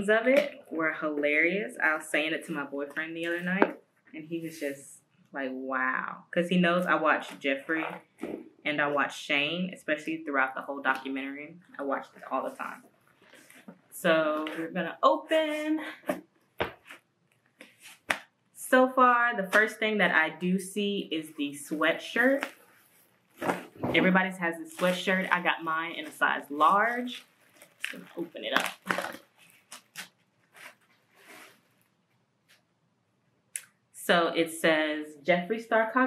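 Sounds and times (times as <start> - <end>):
cardboard rustling: 22.2 - 24.1
plastic bag rustling and crinkling: 22.2 - 32.0.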